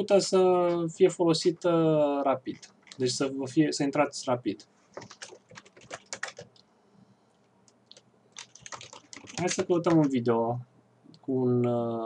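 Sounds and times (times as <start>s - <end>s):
typing on computer keyboard: 2.5s - 3.2s, 5.0s - 6.6s, 7.9s - 10.2s.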